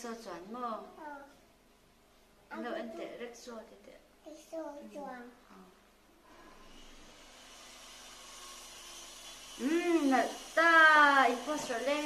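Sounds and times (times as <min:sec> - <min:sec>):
electric fan whooshing: 0:06.2 - 0:12.0.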